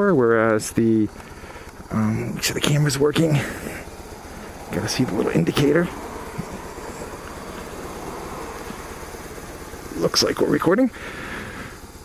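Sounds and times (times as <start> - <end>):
motorcycle engine cruising: 0.0 - 12.0
rush of riding wind: 0.0 - 12.0.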